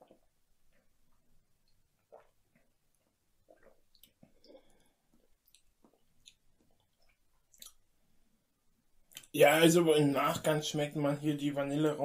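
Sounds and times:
mouth clicks and lip smacks: 0:00.0 - 0:07.9, 0:09.1 - 0:09.3.

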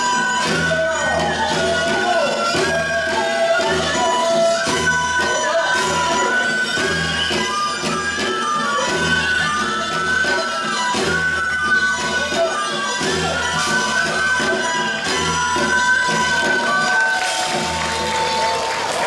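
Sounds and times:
wavering folk melody: 0:00.0 - 0:18.3.

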